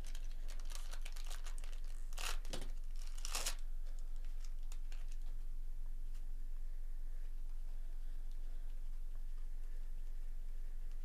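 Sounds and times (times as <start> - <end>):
foil wrapper crinkling and ripping: 0.0 - 5.3.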